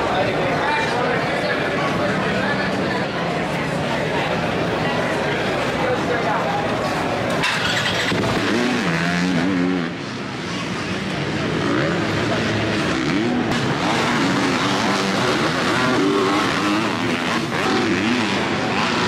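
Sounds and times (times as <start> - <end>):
dirt bike engines revving: 0.0 - 19.0.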